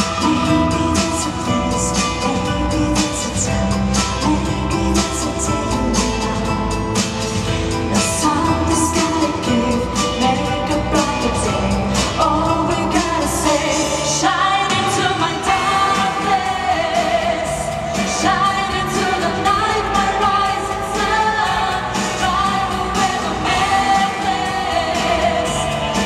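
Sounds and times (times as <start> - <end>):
backing track: 0.0 - 26.0
women singing pop ballad: 0.0 - 26.0.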